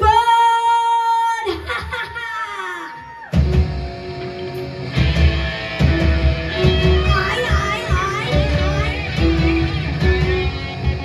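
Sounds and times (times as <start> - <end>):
live rock band playing: 3.3 - 11.0.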